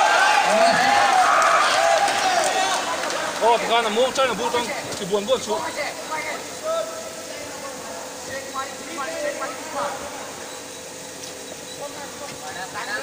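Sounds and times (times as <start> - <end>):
voices shouting: 0.0 - 3.8
crowd chatter: 0.0 - 10.6.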